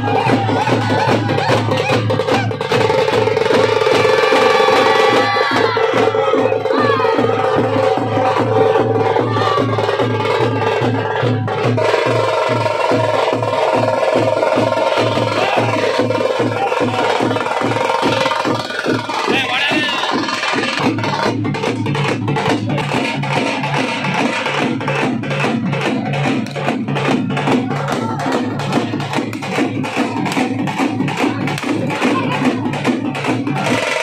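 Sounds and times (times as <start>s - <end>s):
drum ensemble fast beat: 0.0s - 34.0s.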